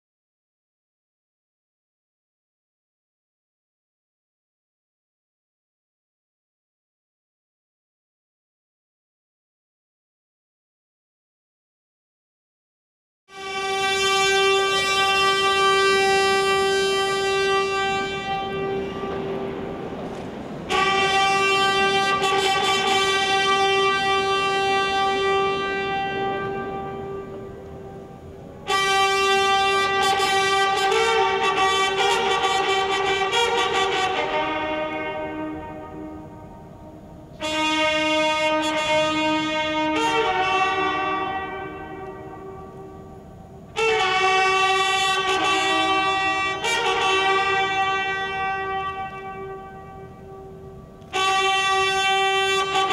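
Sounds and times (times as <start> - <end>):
brass band playing held chords: 13.3 - 52.9
trumpet fanfare long note: 13.3 - 52.9.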